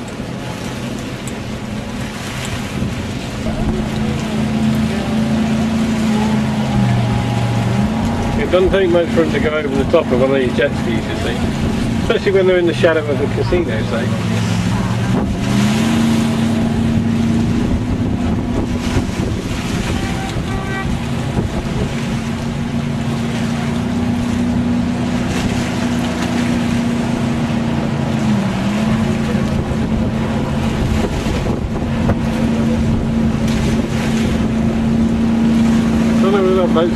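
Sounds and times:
motorboat engine running: 0.0s - 36.9s
wind buffeting microphone: 0.0s - 36.9s.

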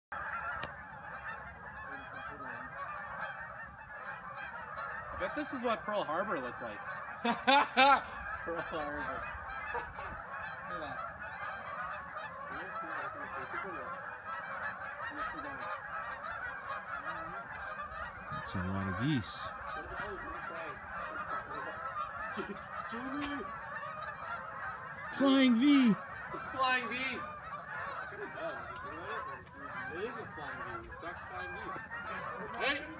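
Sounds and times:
geese honking in flight: 0.1s - 32.9s.

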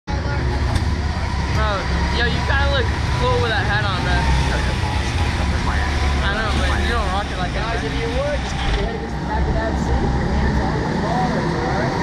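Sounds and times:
low machine rumble: 0.1s - 12.0s.

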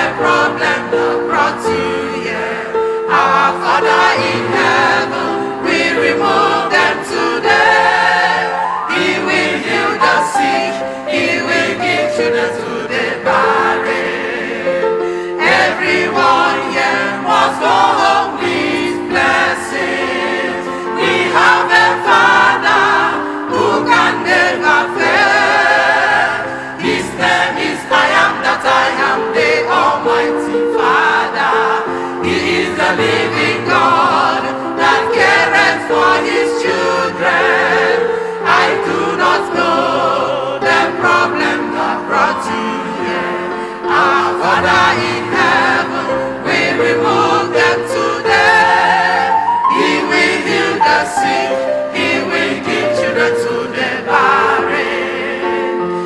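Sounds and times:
choir singing gospel song: 0.0s - 56.0s.

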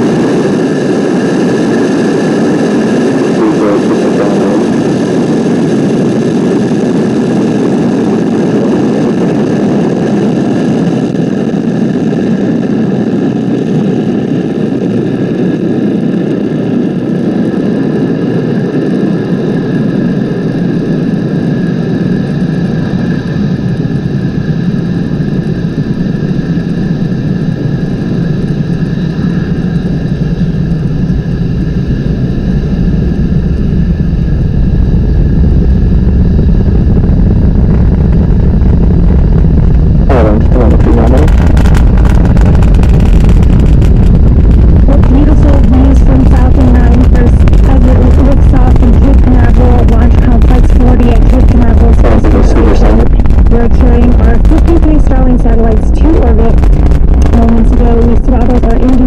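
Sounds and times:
rocket engines rumbling: 0.0s - 59.0s.

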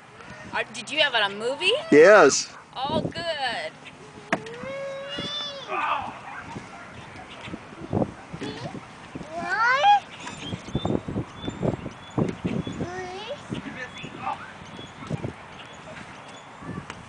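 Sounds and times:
toddler squealing: 4.0s - 6.0s, 8.4s - 10.1s
toddler sing-song vocalising: 4.1s - 5.7s.

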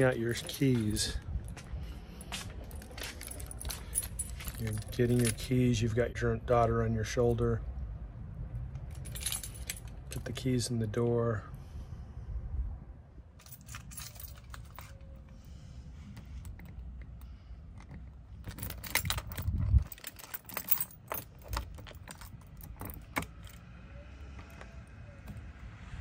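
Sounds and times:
keys jangling in a lock: 0.0s - 1.3s, 2.3s - 5.8s, 8.7s - 10.4s, 13.4s - 15.2s, 16.3s - 23.8s.

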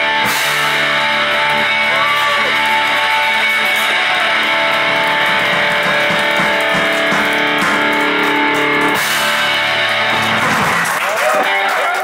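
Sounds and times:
hard rock band playing: 0.0s - 11.8s.

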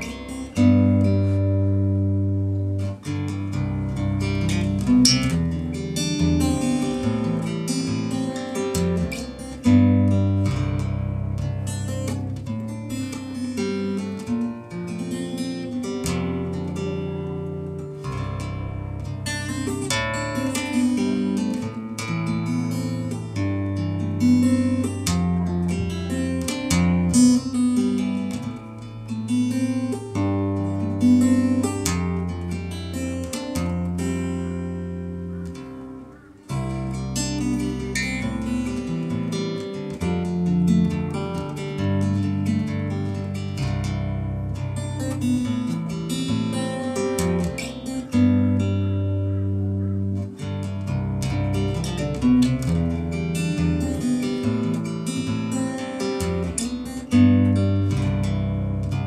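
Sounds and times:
fingerstyle acoustic guitar: 0.0s - 59.0s.

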